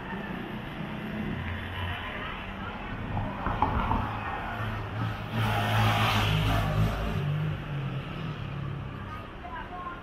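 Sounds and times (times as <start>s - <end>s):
vehicle passing by: 3.2s - 9.2s.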